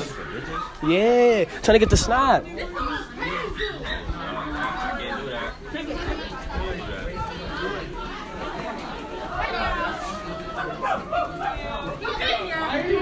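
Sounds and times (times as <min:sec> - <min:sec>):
chatter of many voices: 0:00.0 - 0:13.0.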